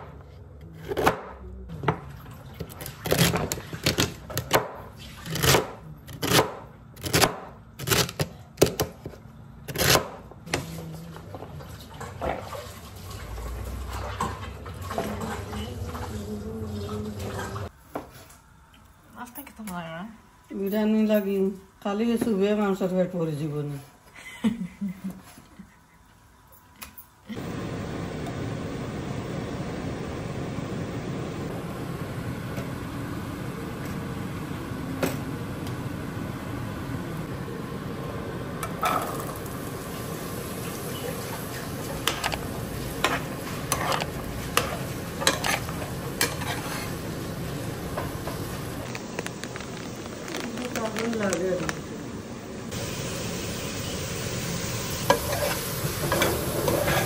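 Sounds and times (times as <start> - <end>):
vegetables sizzling in a wok: 39.0 - 50.3, 52.6 - 57.0
utensil clinking and scraping pan: 43.0 - 47.0.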